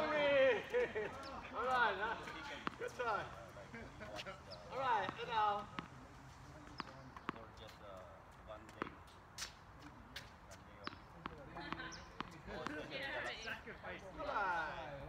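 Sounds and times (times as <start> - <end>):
tennis balls bouncing on court: 0.7 - 14.5
tennis balls struck by rackets: 1.2 - 7.8, 8.6 - 14.0.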